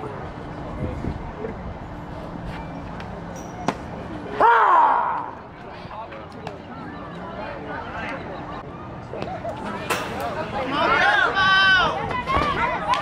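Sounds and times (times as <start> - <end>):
person shouting: 4.4 - 5.3.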